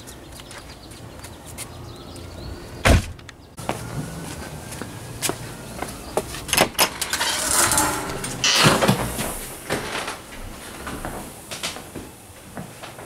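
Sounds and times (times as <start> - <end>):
footsteps: 3.6 - 13.0
door swinging and rattling: 6.5 - 9.3.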